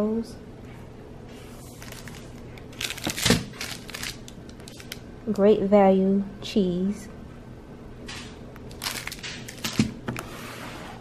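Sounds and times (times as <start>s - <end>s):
packaging crinkling and rustling: 1.5s - 5.0s, 8.6s - 10.2s.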